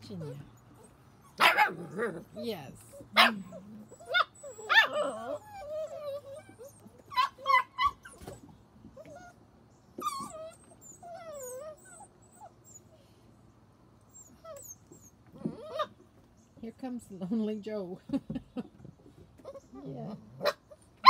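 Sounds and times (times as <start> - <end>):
puppies whining and yipping: 0.0 - 1.5, 2.4 - 13.2, 14.0 - 16.2, 18.9 - 20.0.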